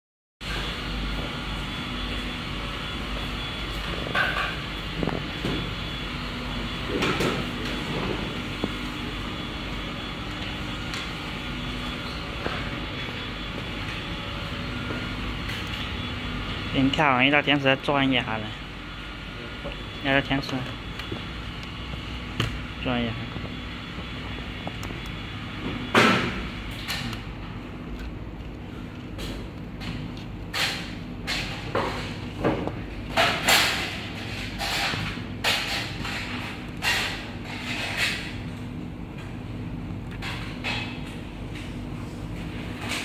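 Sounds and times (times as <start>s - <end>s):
factory hum and rumble: 0.4s - 43.0s.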